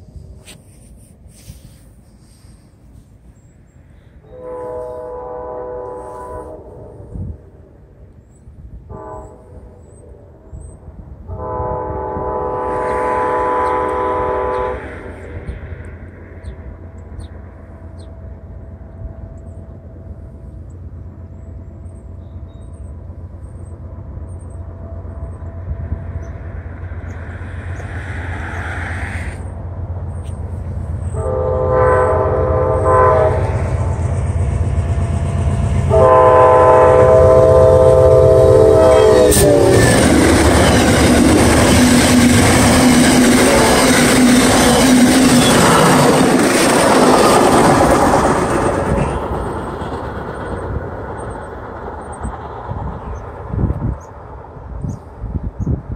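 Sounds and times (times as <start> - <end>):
diesel locomotive engine: 0.0 - 55.9
train horn blasts: 4.2 - 7.4, 8.8 - 10.6, 11.2 - 15.5, 23.8 - 26.4, 31.1 - 48.8
train wheels clattering on rails: 39.1 - 54.2.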